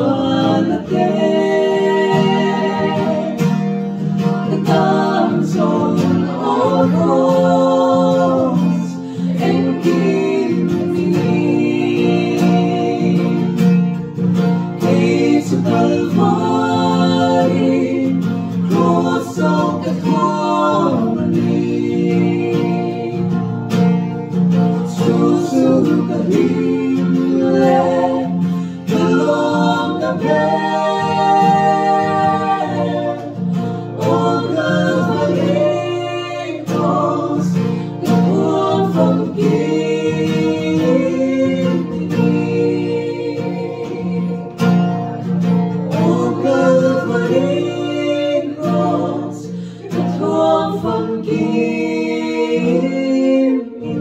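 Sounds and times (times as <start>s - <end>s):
acoustic guitar: 0.0s - 54.0s
voices singing together: 0.0s - 54.0s.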